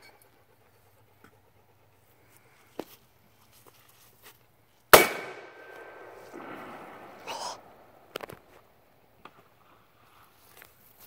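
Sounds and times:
cannon bang echoing: 5.0s - 9.0s.

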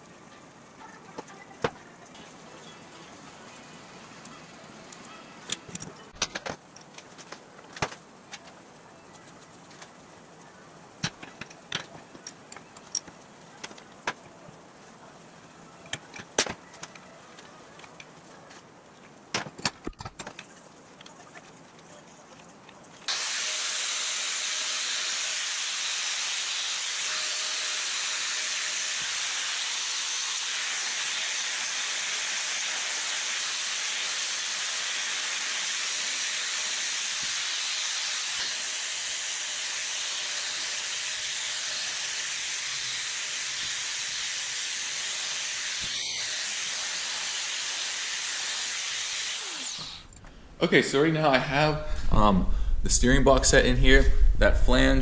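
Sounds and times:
angle grinder grinding steel: 23.1s - 50.1s.

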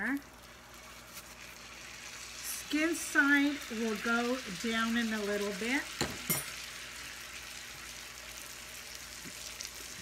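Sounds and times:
fish sizzling in oil: 0.0s - 10.0s.

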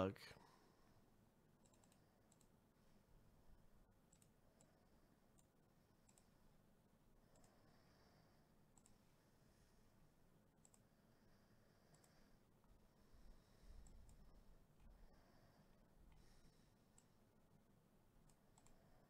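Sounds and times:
faint computer mouse clicks: 1.6s - 2.6s, 4.1s - 6.4s, 7.3s - 7.6s, 8.7s - 9.0s, 10.6s - 10.9s, 11.9s - 12.2s, 13.8s - 14.3s, 16.9s - 17.2s, 18.2s - 18.8s.

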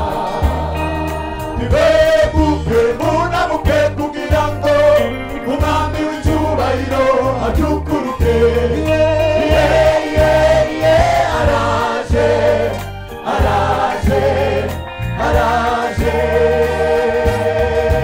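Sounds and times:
bass line: 0.0s - 18.0s
gospel choir singing: 0.0s - 18.0s.

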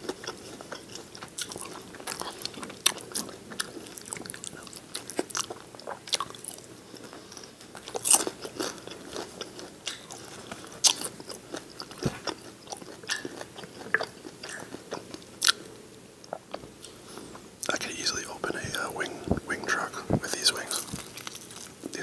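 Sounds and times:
chewing fried chicken: 0.0s - 22.0s.

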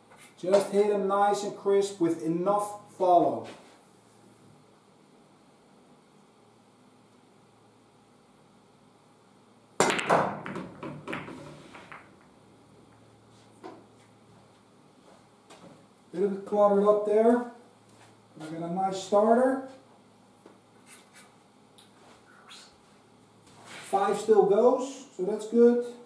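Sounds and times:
cue ball cracking into pool balls: 9.8s - 12.3s
pool balls clicking together: 9.8s - 12.3s.

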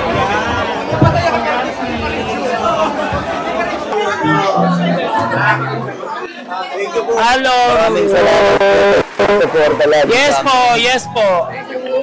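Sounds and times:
people talking at once: 0.0s - 12.0s
background music: 4.2s - 6.0s
low bass notes: 4.2s - 6.2s, 10.6s - 11.7s.

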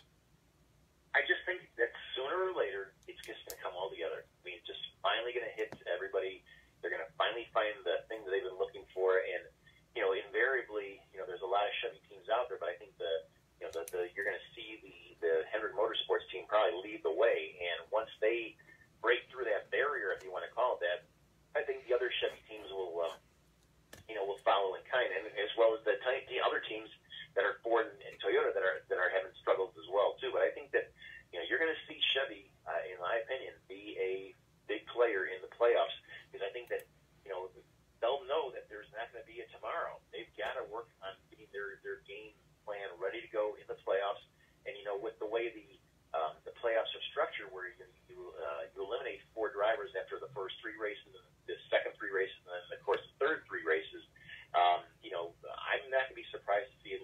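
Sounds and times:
man speaking over telephone: 1.2s - 21.0s, 21.6s - 23.2s, 24.0s - 57.0s.

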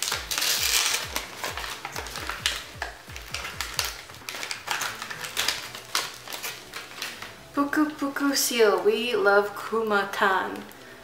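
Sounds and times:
packaging crinkling: 0.0s - 8.0s.

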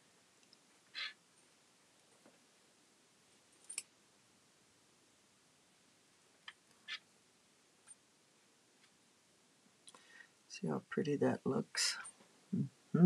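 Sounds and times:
faint clicks of beads and needle: 0.4s - 0.7s.

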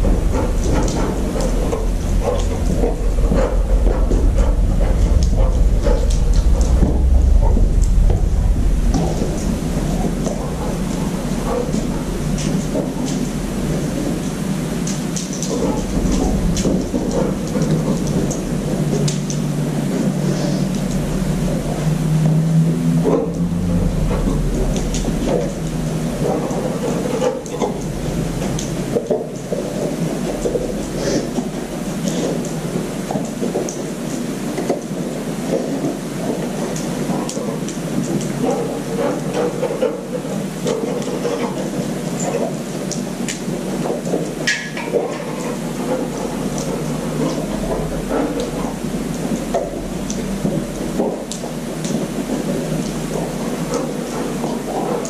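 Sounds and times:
low rumble and hum of room: 0.0s - 55.0s.

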